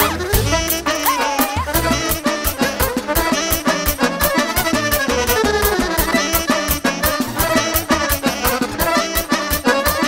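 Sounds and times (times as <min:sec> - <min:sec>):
person singing: 0:00.0 - 0:04.4
folk band playing dance tune: 0:00.0 - 0:10.0.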